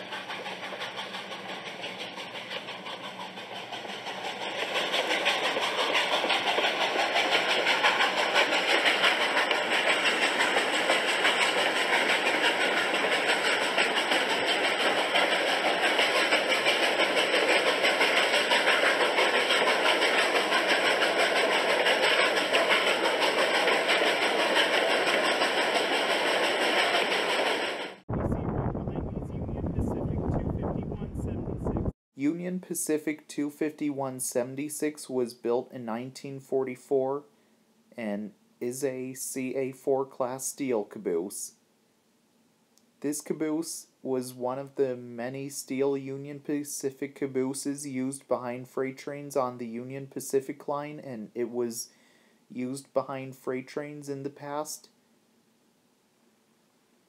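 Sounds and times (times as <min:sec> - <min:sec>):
train rumbling on rails: 0:00.0 - 0:31.9.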